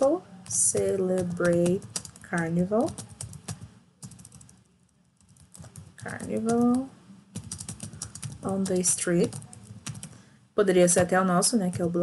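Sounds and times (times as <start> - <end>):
typing on computer keyboard: 0.4 - 4.6, 5.2 - 10.2, 11.0 - 12.0.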